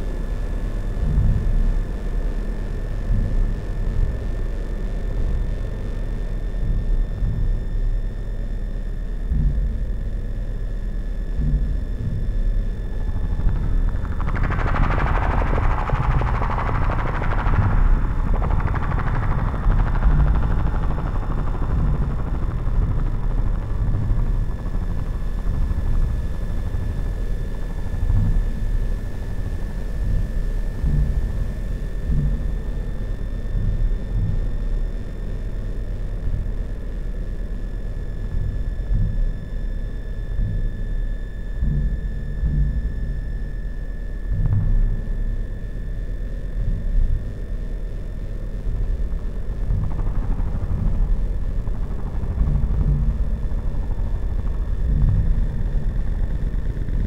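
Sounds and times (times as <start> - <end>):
low synthesizer drone: 0.0 - 57.0.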